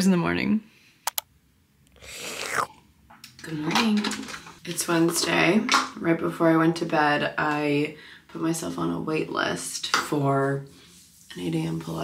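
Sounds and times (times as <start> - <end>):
sharp clicks: 1.0 - 1.3
slurp of sipping coffee: 1.9 - 2.8.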